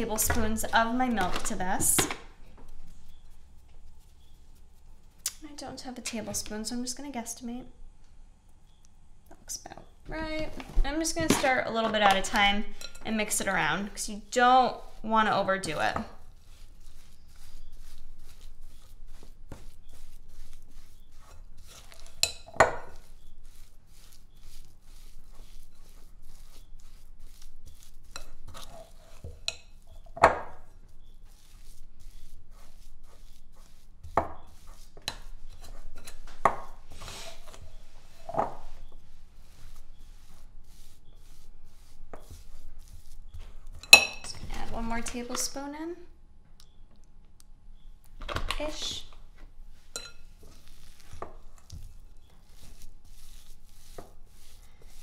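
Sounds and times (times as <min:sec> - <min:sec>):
utensil stirring dough in glass bowl: 0:00.0 - 0:05.2, 0:10.9 - 0:45.5, 0:49.6 - 0:55.0.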